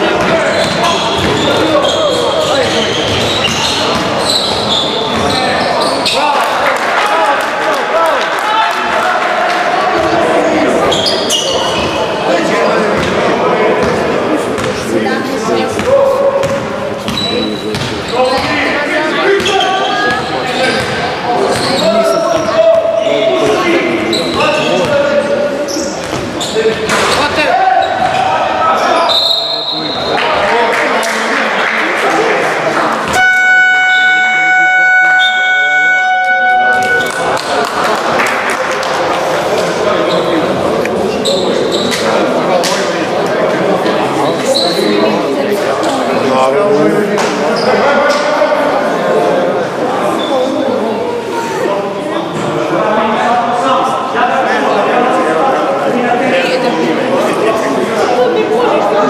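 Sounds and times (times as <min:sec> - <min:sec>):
basketball bouncing: 0:00.2 - 0:01.6, 0:13.0 - 0:13.2, 0:17.7 - 0:18.5
electronic buzzer tone: 0:33.1 - 0:37.2.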